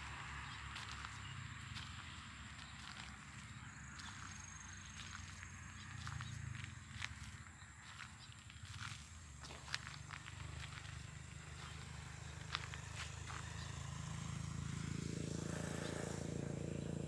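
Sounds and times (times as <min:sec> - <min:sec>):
footsteps on dry soil: 0:00.0 - 0:13.8.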